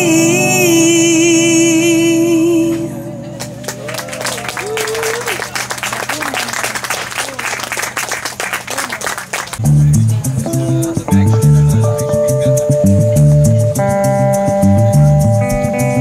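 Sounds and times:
voices calling out: 0:02.7 - 0:09.6
audience clapping: 0:03.4 - 0:09.6
electric guitar riff: 0:09.6 - 0:16.0.

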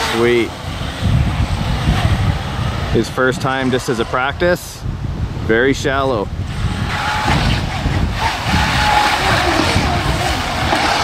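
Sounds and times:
faint wavering motor whine: 0:06.3 - 0:11.0
water rushing: 0:06.5 - 0:11.0.

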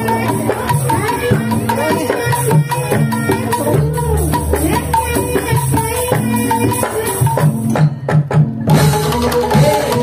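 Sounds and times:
percussion music: 0:00.0 - 0:10.0.

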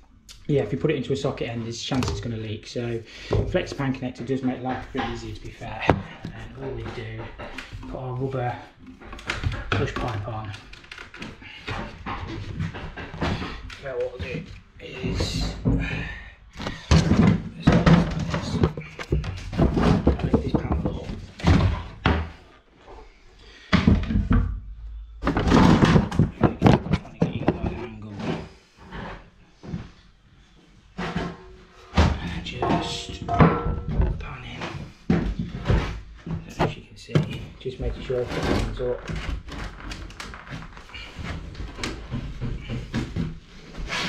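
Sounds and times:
ceramic toilet thunks and knocks: 0:31.1 - 0:34.3.

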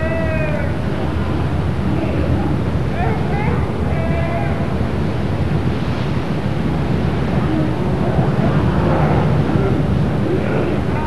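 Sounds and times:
raised voices: 0:00.0 - 0:04.8
boat pounding through waves: 0:00.0 - 0:11.0
churning water rushing: 0:00.0 - 0:11.0
wind on microphone: 0:00.6 - 0:11.0.

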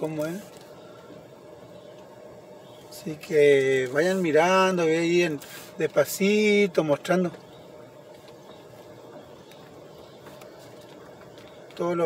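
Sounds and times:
car rolling slowly: 0:00.0 - 0:12.0
faint bird chirps: 0:00.5 - 0:03.5, 0:07.3 - 0:11.8.

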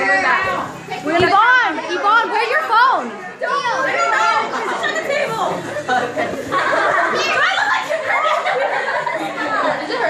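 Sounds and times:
girls chattering excitedly: 0:00.0 - 0:10.0.

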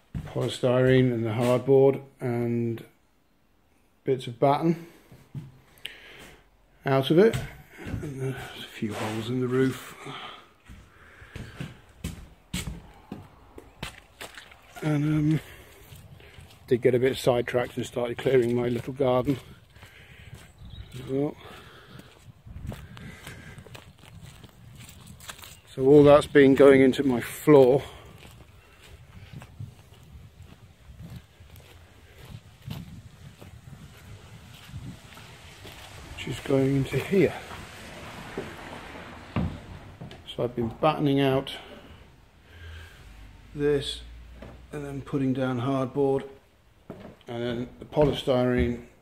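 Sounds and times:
footsteps on wooden floor: 0:00.0 - 0:01.7, 0:05.0 - 0:06.3, 0:07.3 - 0:14.6, 0:17.6 - 0:26.2, 0:27.2 - 0:40.4, 0:46.8 - 0:49.0.

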